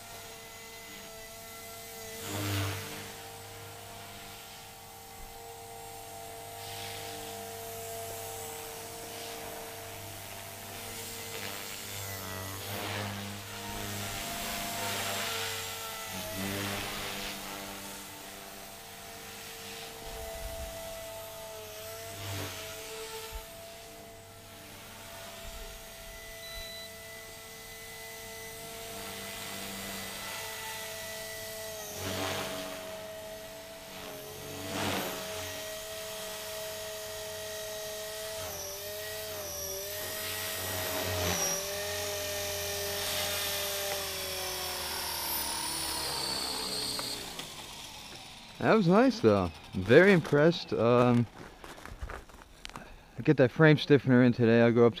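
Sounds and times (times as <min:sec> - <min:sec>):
rc helicopter rotor and motor whine: 0:00.0 - 0:55.0.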